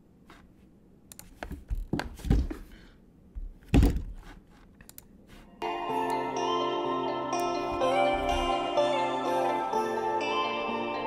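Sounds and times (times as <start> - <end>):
keyboard and mouse clicks: 1.1 - 2.1, 4.7 - 5.2.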